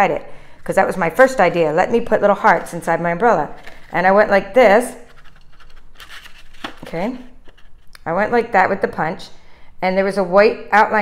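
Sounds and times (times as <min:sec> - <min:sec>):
cardstock scraping on plastic: 0:05.0 - 0:07.9.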